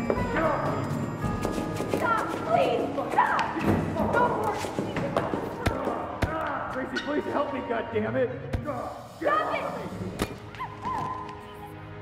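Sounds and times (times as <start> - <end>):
film music: 0.0 - 4.8, 5.8 - 12.0.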